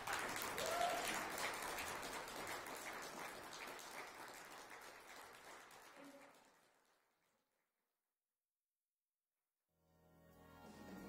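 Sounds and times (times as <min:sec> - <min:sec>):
small audience clapping: 0:00.0 - 0:07.6.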